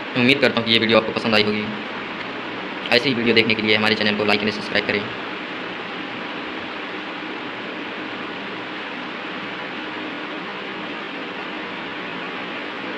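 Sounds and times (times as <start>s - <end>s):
background hiss: 0.0s - 12.9s
faint low hum: 0.0s - 12.9s.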